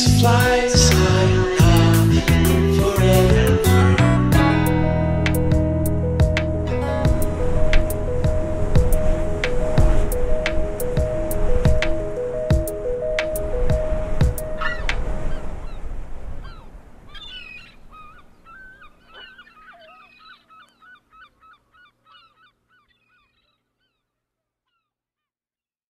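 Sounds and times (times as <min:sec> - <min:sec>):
song with a beat: 0:00.0 - 0:15.0
gulls calling: 0:05.3 - 0:24.0.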